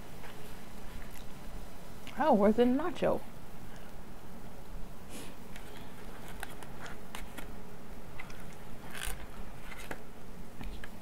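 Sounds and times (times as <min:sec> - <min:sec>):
plastic packaging crackling: 0:05.5 - 0:10.1.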